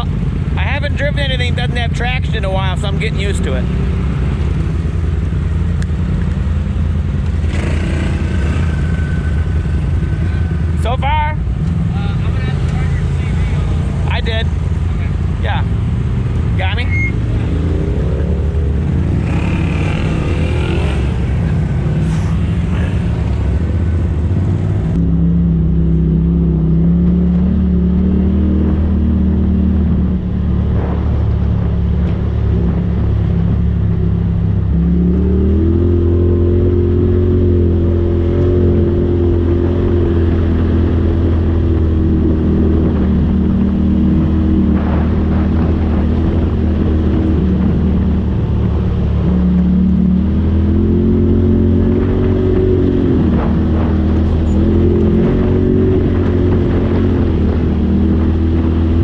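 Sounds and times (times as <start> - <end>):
off-road vehicle engine: 0.0 - 59.0.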